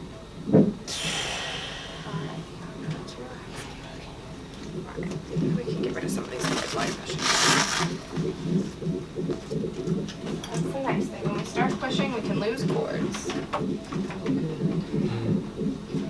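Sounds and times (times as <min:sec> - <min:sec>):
fetal heartbeat monitor pulsing: 0:00.0 - 0:16.0.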